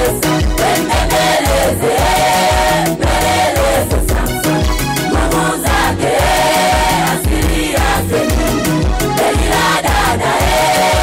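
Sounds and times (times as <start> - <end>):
steady drum beat: 0.0 - 4.4, 5.1 - 8.6, 9.2 - 11.0
choir singing gospel: 0.0 - 11.0.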